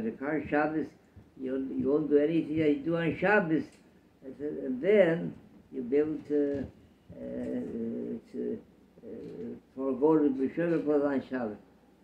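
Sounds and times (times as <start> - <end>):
old man saying uhh: 7.1 - 9.7.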